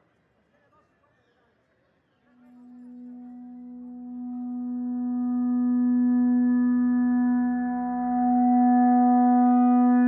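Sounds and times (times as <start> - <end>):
sustained musical note: 2.6 - 10.0.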